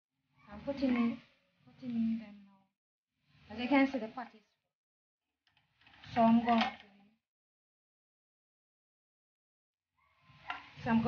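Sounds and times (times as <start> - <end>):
woman speaking: 0.5 - 2.7, 3.5 - 4.6, 6.1 - 7.1, 10.8 - 11.0.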